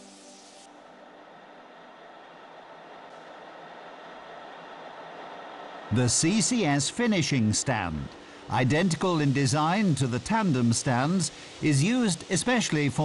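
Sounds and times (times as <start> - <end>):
rolling mill rushing noise: 0.0 - 13.0.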